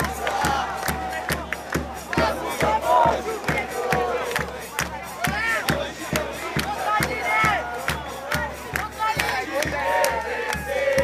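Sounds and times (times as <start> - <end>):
bass drum beating: 0.0 - 11.0
crowd chanting: 0.0 - 11.0.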